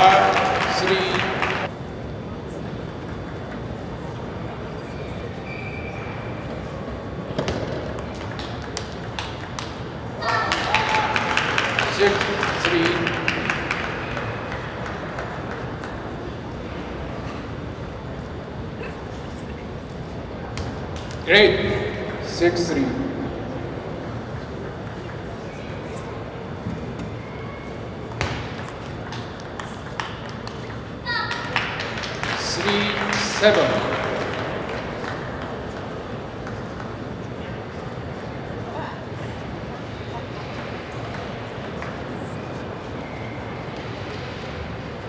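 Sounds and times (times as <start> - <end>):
table tennis ball clicking: 2.6 - 3.8, 7.8 - 9.9, 28.5 - 31.6
table tennis ball ticking: 2.6 - 4.6.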